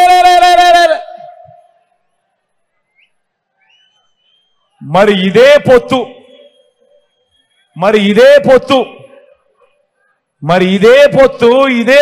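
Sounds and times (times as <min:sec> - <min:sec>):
man's amplified drawn-out vowel: 0:00.0 - 0:01.6, 0:04.8 - 0:06.7, 0:07.8 - 0:09.4, 0:10.4 - 0:12.0.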